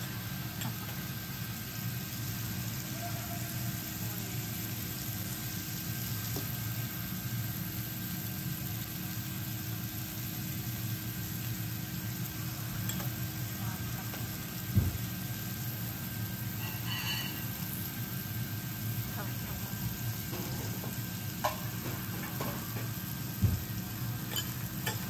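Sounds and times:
food sizzling on a griddle: 0:00.0 - 0:25.0.

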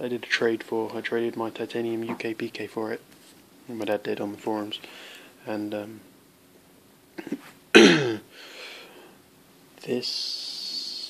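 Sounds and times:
man clearing his throat: 0:07.2 - 0:08.3.

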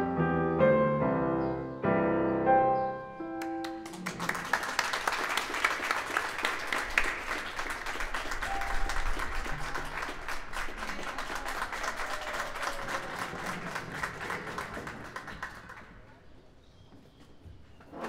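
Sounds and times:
audience applauding: 0:03.4 - 0:16.3.

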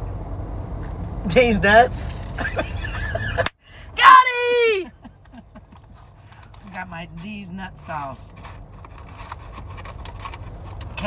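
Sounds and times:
sandwich bitten and handled: 0:08.3 - 0:11.0.

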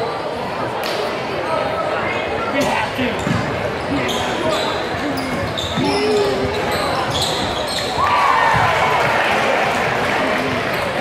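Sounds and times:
voices of spectators and players: 0:00.0 - 0:11.0
basketball bouncing on court: 0:03.2 - 0:03.6
shoe squeaks: 0:03.2 - 0:08.0
loud shout: 0:08.0 - 0:09.9.

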